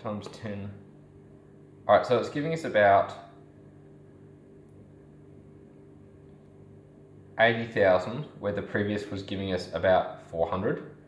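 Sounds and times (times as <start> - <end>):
faint low electrical hum: 0.0 - 11.0.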